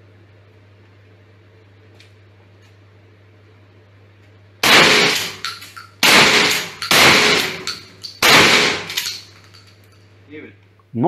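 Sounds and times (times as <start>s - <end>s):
shotgun shots echoing indoors: 4.6s - 9.3s.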